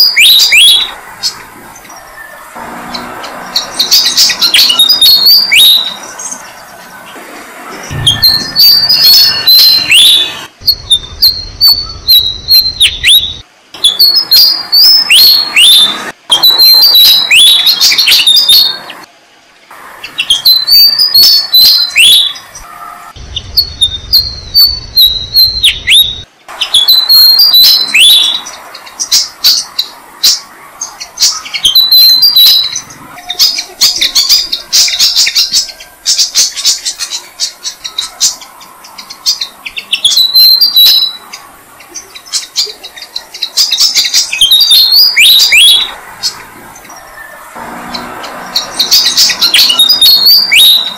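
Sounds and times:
birds chirping: 0.0s - 50.9s.

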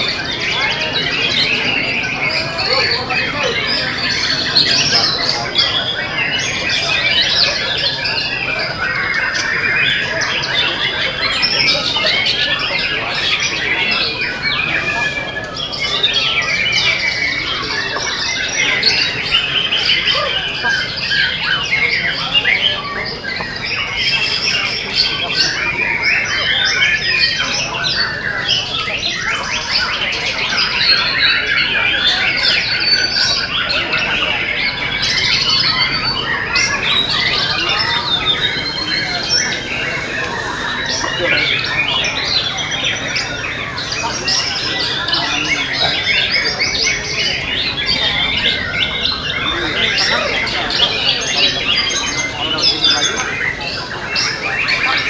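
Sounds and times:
chorus of songbirds whistling: 0.0s - 55.0s.

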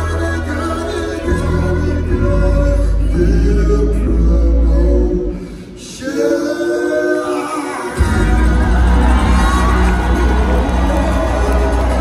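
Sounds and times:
live soul-pop band music: 0.0s - 12.0s
crowd cheering: 7.4s - 12.0s.

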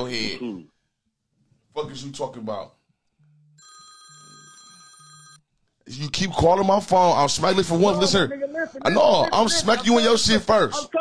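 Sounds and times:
phone ringing: 3.6s - 5.4s.

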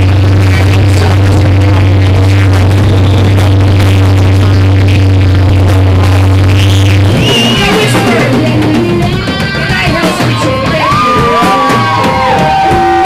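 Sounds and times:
distorted guitar and bass low note: 0.0s - 13.0s.

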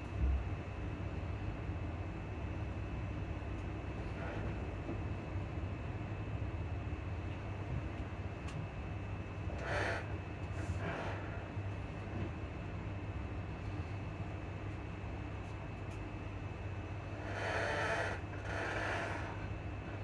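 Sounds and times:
train rumbling inside carriage: 0.0s - 20.0s.

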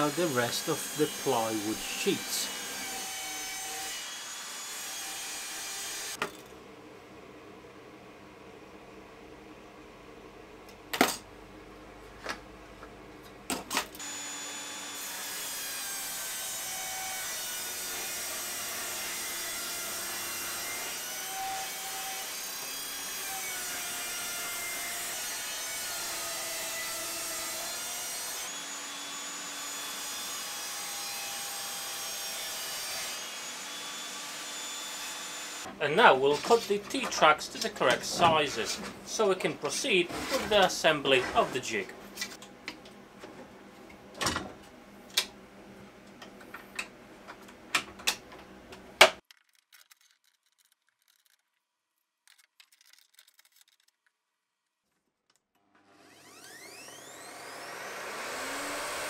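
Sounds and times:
table saw cutting plywood: 0.0s - 6.2s, 14.0s - 35.7s, 36.3s - 41.8s, 55.6s - 59.0s.

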